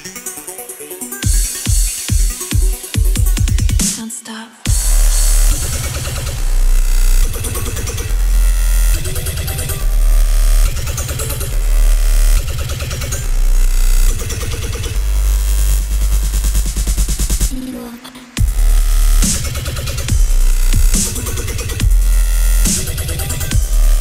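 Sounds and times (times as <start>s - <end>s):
dubstep track with heavy bass: 0.0s - 24.0s.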